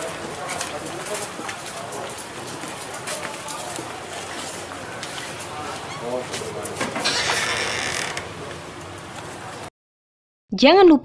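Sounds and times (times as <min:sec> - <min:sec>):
faint voices: 0:00.0 - 0:09.7.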